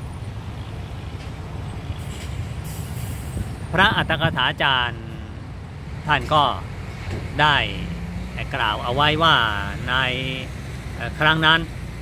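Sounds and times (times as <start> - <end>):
man speaking: 3.7 - 5.5, 6.1 - 6.7, 7.3 - 11.7.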